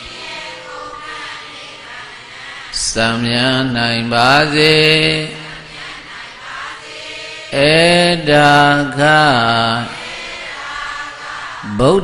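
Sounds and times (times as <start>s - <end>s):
man chanting into microphone: 2.8s - 5.6s, 7.5s - 10.0s, 11.6s - 12.0s.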